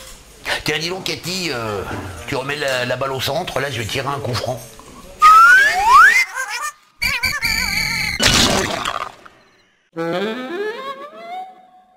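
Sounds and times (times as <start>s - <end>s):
rising whistle-like glide: 5.2s - 6.3s.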